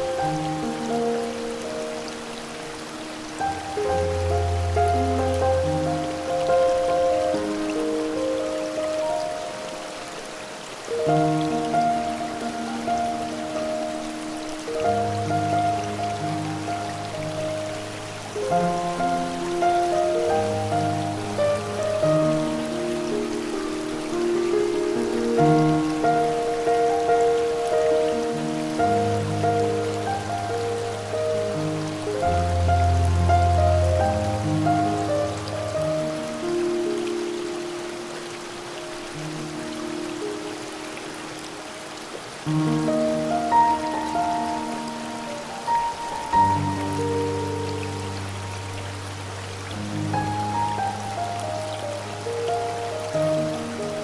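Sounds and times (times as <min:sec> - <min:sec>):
gentle piano music: 0:00.0 - 0:54.0
waterfall hiss: 0:00.0 - 0:54.0.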